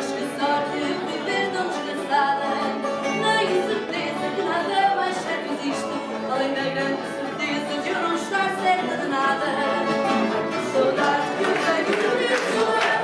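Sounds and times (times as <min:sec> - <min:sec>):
guitar accompaniment: 0:00.0 - 0:13.0
woman singing: 0:00.0 - 0:13.0.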